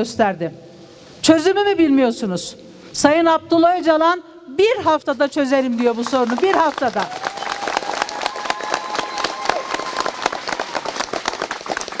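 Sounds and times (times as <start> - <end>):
crowd clapping: 5.6 - 12.0.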